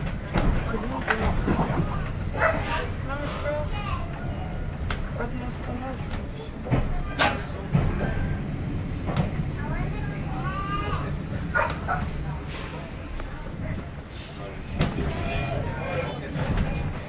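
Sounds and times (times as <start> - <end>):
railway carriage rumble: 0.0 - 17.0.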